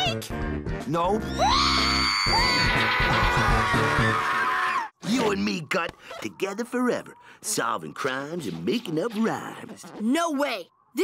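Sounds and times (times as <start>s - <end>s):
music: 0.0s - 4.5s.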